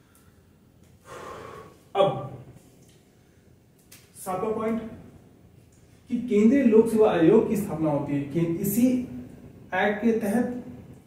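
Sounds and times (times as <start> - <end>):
man gasping: 1.0 - 1.9.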